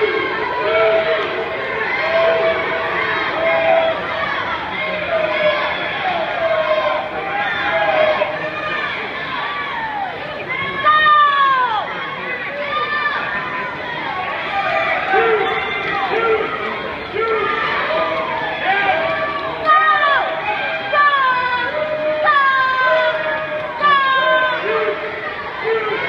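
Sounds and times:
crowd shouting and cheering: 0.0 - 26.0
loud drawn-out shout: 0.0 - 26.0.

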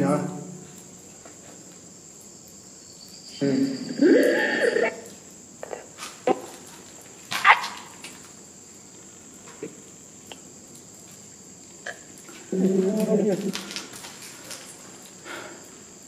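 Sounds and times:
thin high whine: 3.3 - 5.2.

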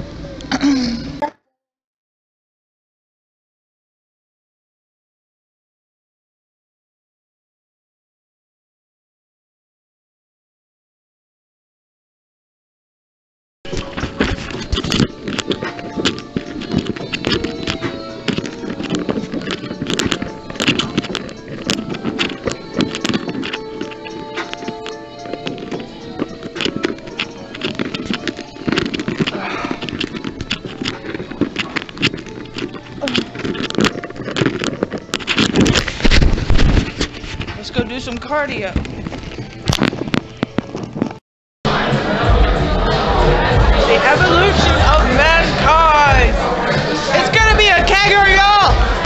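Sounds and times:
crowd chatter: 13.7 - 40.9, 41.7 - 49.0
background music: 13.7 - 41.1, 41.7 - 49.0
clatter in a bar: 13.7 - 41.2.

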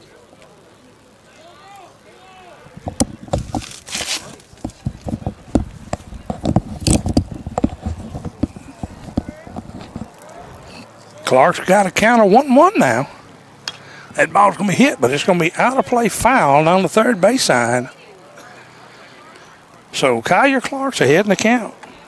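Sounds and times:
faint voices: 0.0 - 22.0.

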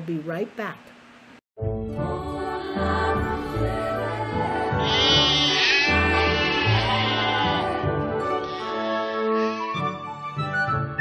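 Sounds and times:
background music: 1.6 - 11.0
cartoon sheep bleating: 4.8 - 9.9.

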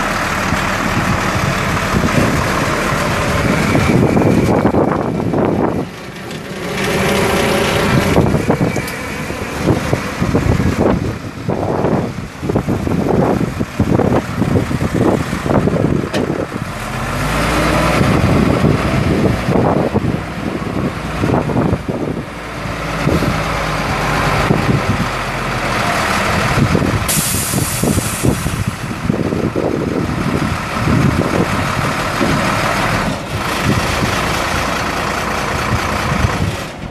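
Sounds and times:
diesel truck engine idling: 0.0 - 36.9.

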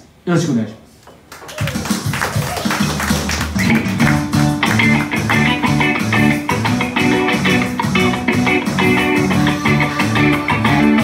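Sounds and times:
electric guitar playing: 2.8 - 11.0.

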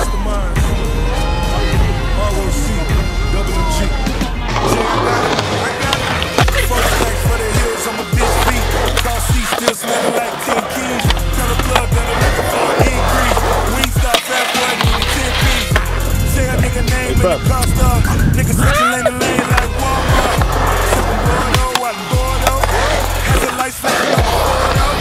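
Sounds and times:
hip hop music with deep bass: 0.0 - 25.0
skateboard rolling on concrete: 3.7 - 25.0
skateboard clacks: 4.6 - 16.0, 18.8 - 25.0.

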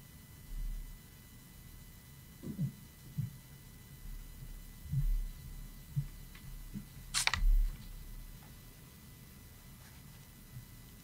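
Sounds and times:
camera shutter clicks: 7.2 - 7.5.

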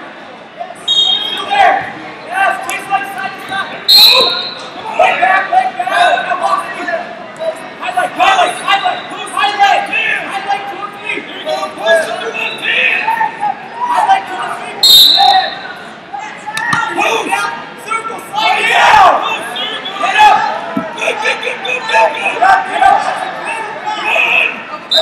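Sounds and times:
spectators calling out: 0.7 - 6.8, 7.6 - 25.0.

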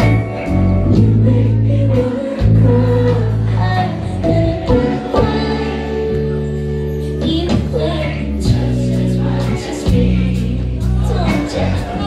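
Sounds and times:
woman singing: 0.0 - 6.4, 7.0 - 12.0
drums: 0.0 - 12.0
electric bass: 0.0 - 12.0.

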